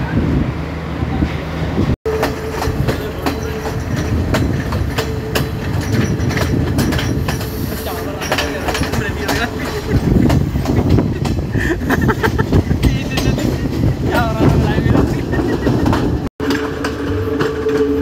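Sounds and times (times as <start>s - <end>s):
train wheels rumbling on rails: 0.0s - 18.0s
rail-joint clicks: 2.1s - 18.0s.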